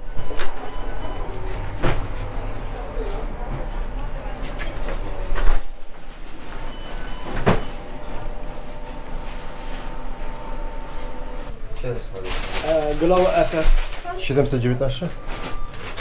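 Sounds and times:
people talking: 0.0 - 5.7, 11.4 - 15.2.

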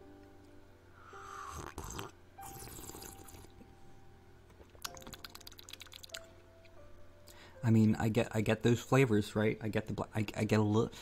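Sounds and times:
quiet instrumental music: 0.0 - 11.0
sipping and slurping tea: 1.3 - 3.5.

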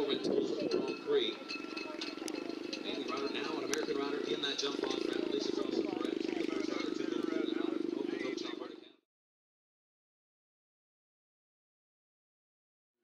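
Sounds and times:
distant unintelligible talk: 0.0 - 9.0.

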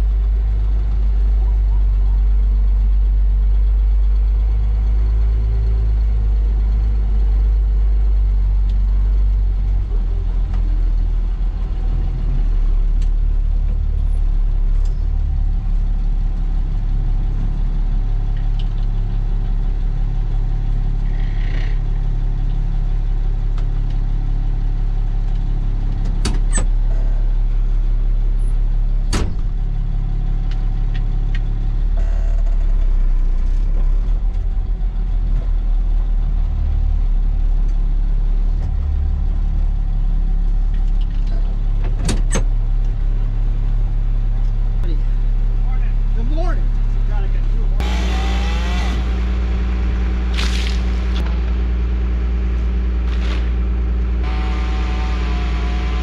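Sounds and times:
truck engine low rumble: 0.0 - 56.0.

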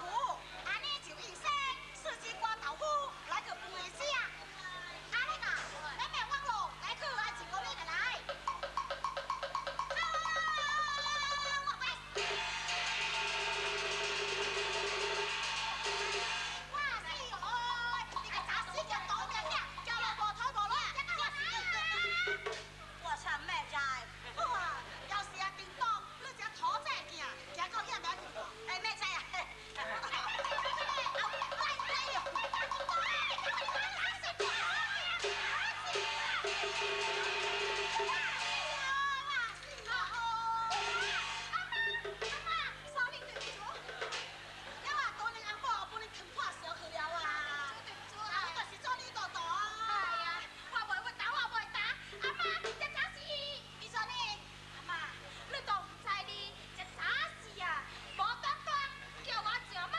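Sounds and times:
rapid percussion roll: 8.2 - 20.4, 21.0 - 22.7, 29.8 - 45.6, 52.2 - 53.1
held instrumental note: 12.2 - 16.7.

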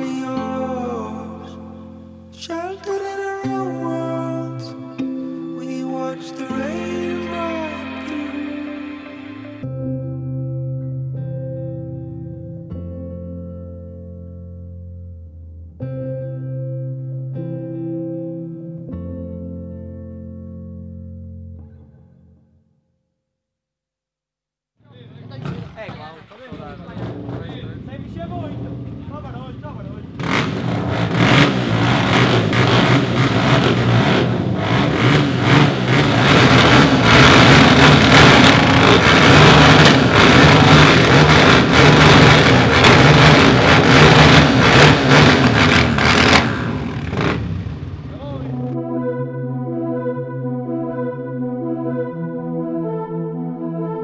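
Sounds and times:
background music: 0.0 - 22.4, 47.9 - 54.0
motocross bike engines revving: 24.9 - 48.7.

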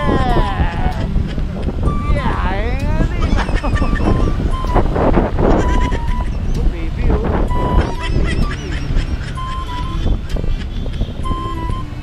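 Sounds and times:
person's wavering voice: 0.0 - 1.2, 1.9 - 4.4, 6.6 - 8.3
low rumble: 0.0 - 12.0.

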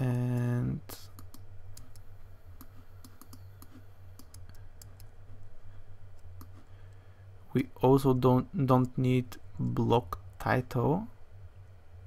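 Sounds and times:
keyboard and mouse clicks: 0.0 - 5.1
steady low hum: 0.0 - 12.0.

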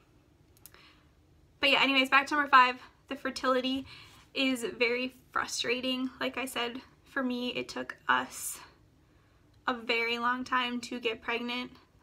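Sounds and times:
woman speaking: 1.6 - 8.8, 9.7 - 11.9.

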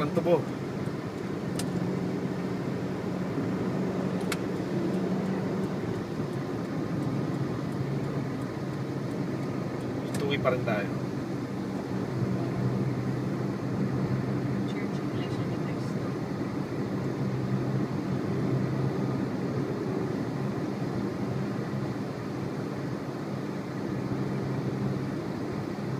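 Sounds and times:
vehicle engine and road noise: 0.0 - 25.9.

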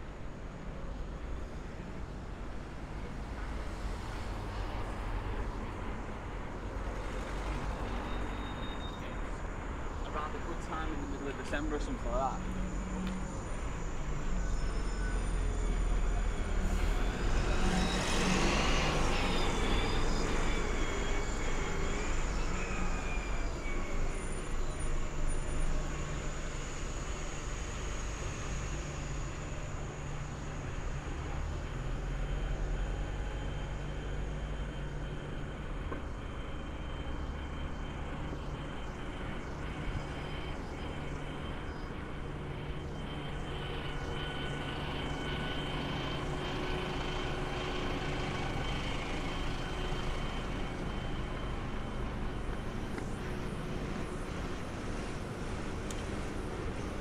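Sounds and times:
buses and truck passing: 0.0 - 57.0
high thin whine: 7.8 - 57.0.

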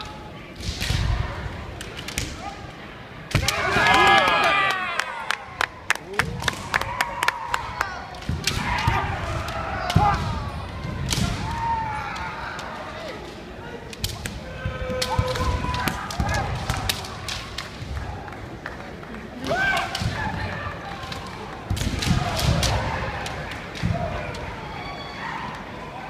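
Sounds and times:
bamboo swords clacking: 0.0 - 2.4, 11.0 - 17.8.

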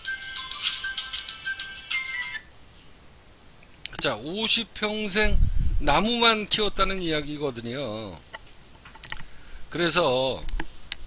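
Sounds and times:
phone ringtone beeping melody: 0.0 - 2.5.

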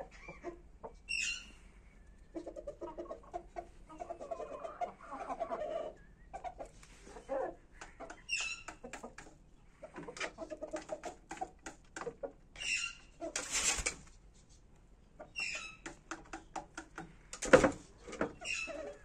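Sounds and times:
chickens clucking: 0.0 - 14.2, 15.0 - 19.0.

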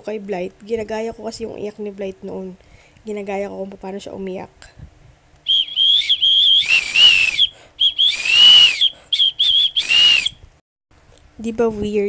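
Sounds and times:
warbling whistle: 5.5 - 10.4.

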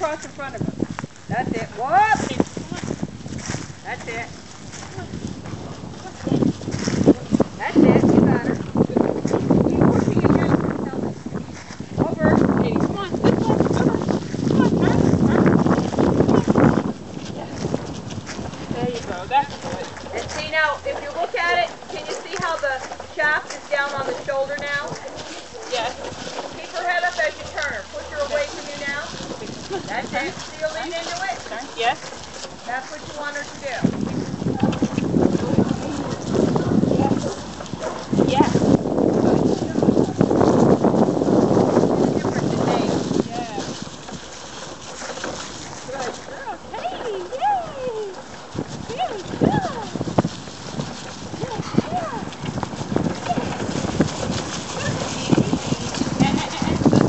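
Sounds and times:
footsteps on dry leaves: 0.0 - 57.0
wagon rolling over leaves: 0.0 - 57.0
wind on microphone: 0.0 - 57.0.

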